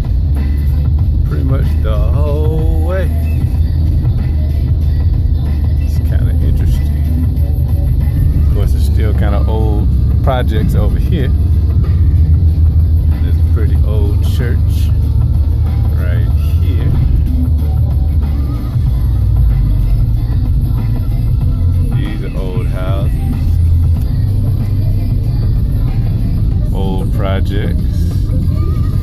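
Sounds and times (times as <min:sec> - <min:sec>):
car rumble from inside cabin: 0:00.0 - 0:29.0
music playing: 0:00.0 - 0:29.0
voice: 0:01.3 - 0:03.2, 0:05.9 - 0:07.0, 0:08.3 - 0:11.4, 0:13.1 - 0:15.0, 0:15.9 - 0:17.3, 0:21.9 - 0:23.5, 0:26.7 - 0:28.2.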